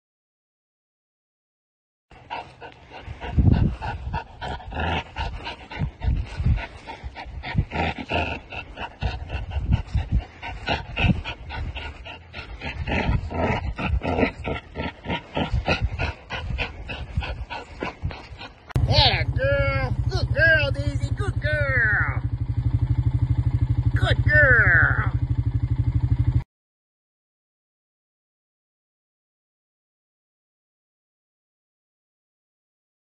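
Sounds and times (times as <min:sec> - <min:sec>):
dog panting hard: 0:02.1 - 0:24.6.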